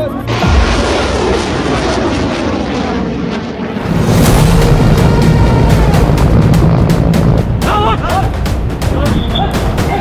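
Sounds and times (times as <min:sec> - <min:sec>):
rocket motor roaring: 0:00.4 - 0:07.7.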